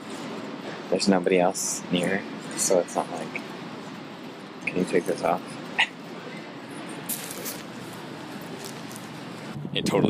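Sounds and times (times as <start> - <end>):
store background noise: 0.0 - 10.0.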